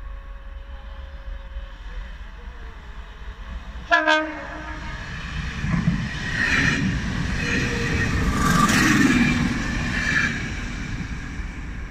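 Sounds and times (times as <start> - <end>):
electric train passing on rails: 0.0 - 11.9.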